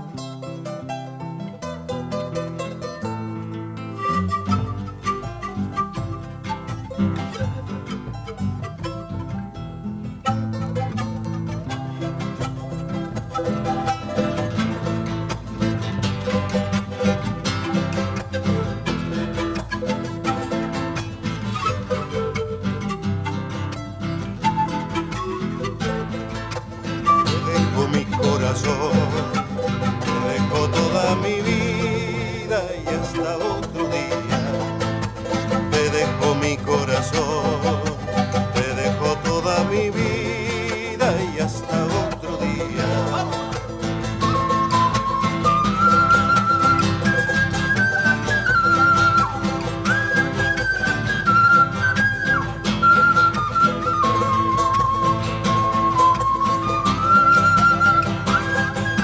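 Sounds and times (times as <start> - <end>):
acoustic guitar strumming: 0.0 - 59.0
charango strumming: 0.0 - 59.0
panpipes melody: 4.0 - 9.4, 10.2 - 31.1, 41.8 - 59.0.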